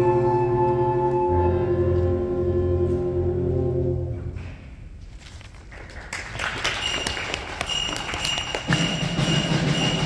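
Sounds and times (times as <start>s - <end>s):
audience applauding: 5.7s - 9.7s
band's ringing notes: 6.8s - 10.0s.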